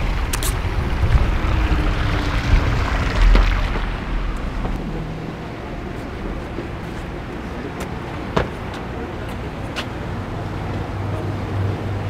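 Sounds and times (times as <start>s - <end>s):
outdoor rumble and hiss: 0.0s - 12.0s.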